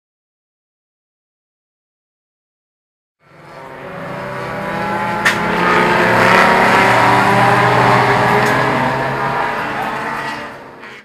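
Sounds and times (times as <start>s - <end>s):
race car engine passing: 3.2s - 11.0s.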